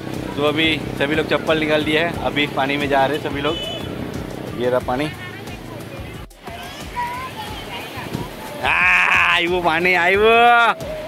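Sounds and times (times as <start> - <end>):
small waves washing over sand: 0.0 - 11.0.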